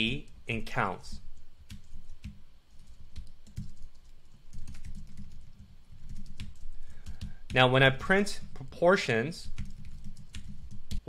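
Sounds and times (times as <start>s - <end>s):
typing on computer keyboard: 1.7s - 8.6s, 9.4s - 11.0s.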